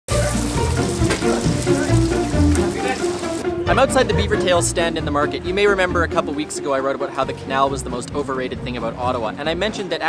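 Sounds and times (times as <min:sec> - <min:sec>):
oil sizzling in a deep fryer: 0:00.1 - 0:03.4
background music with bass line: 0:00.1 - 0:10.0.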